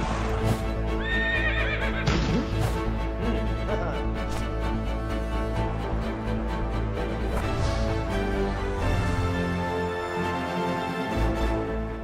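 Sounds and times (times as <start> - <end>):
theme music: 0.0 - 12.0
horse whinnying: 1.0 - 2.2.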